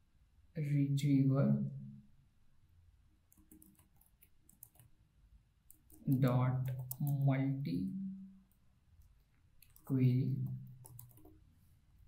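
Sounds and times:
computer keyboard typing: 3.3s - 4.9s, 5.7s - 7.3s, 9.6s - 11.4s.

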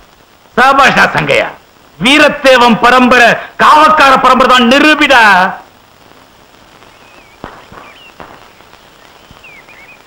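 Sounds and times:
faint hiss: 0.0s - 10.0s
faint bird chirps: 6.8s - 10.0s.

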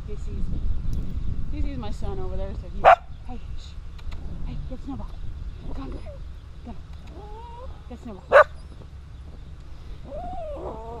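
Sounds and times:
dog whining: 7.1s - 7.8s, 10.0s - 11.0s.

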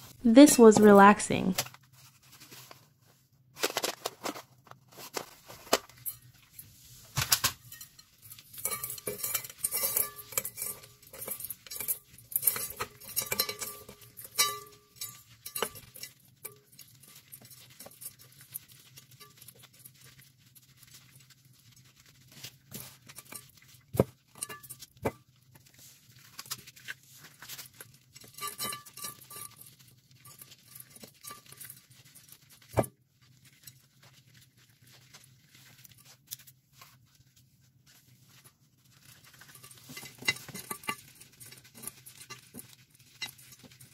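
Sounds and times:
dried paste crunching in foil pan: 1.6s - 43.9s.

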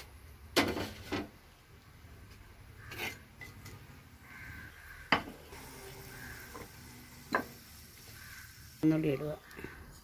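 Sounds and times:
oil sizzling faintly: 0.0s - 10.0s.

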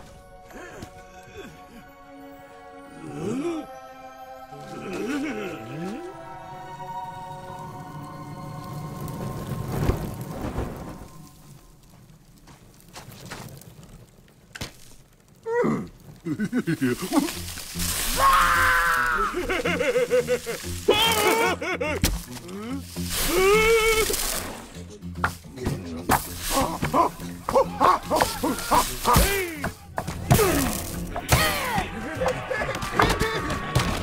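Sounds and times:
music: 0.0s - 12.9s, 15.2s - 34.0s
crackling embers: 0.0s - 34.0s.

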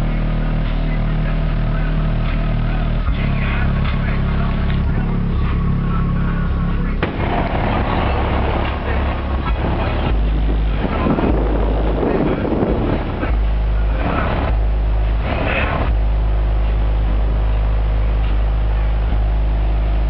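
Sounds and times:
subwoofer bass notes: 0.0s - 20.0s
car body rattling buzz: 1.4s - 20.0s.

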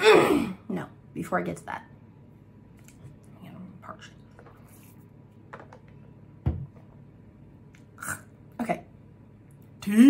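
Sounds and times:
woman clearing her throat: 0.0s - 0.6s.

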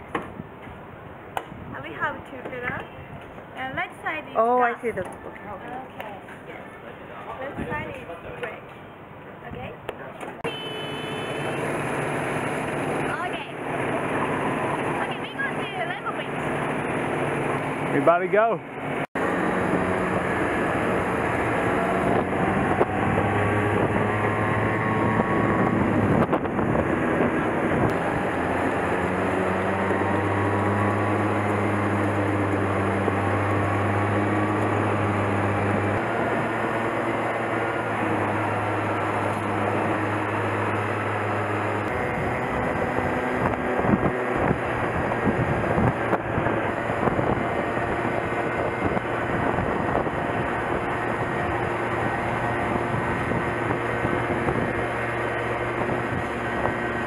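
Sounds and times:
wind blowing on microphone: 1.5s - 1.9s, 21.2s - 28.4s, 41.3s - 57.0s
go-kart engine running: 10.4s - 57.0s.

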